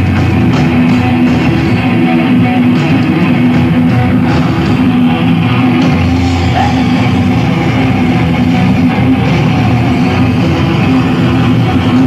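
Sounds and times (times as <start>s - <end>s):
metal band playing live: 0.0s - 12.0s
sustained low guitar note: 3.2s - 12.0s.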